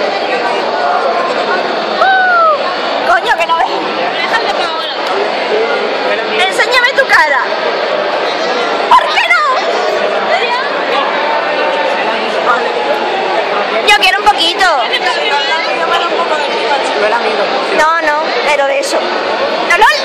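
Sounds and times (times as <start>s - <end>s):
indoor crowd chatter: 0.0s - 20.0s.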